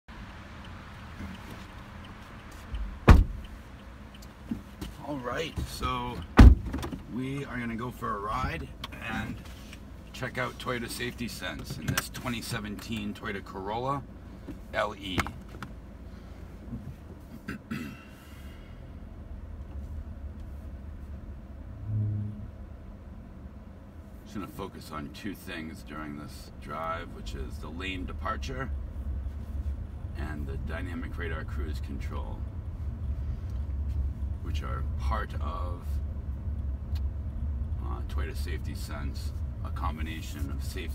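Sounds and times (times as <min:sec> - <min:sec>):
low steady hum: 0:00.1 - 0:40.9
car door shutting: 0:02.8 - 0:03.5, 0:06.3 - 0:07.1
low hum: 0:18.5 - 0:23.7
car engine running: 0:19.1 - 0:24.6.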